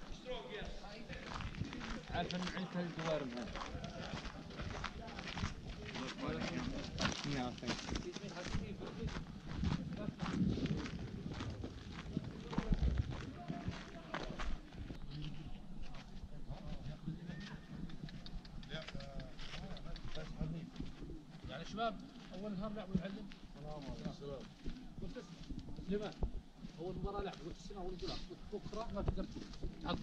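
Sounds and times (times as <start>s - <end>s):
footsteps on gravel path: 0.0s - 30.0s
people talking outdoors: 0.0s - 30.0s.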